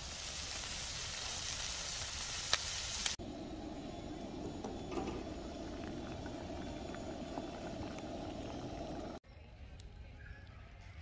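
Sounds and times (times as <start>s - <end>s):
broth bubbling at a rolling boil: 0.0s - 9.2s.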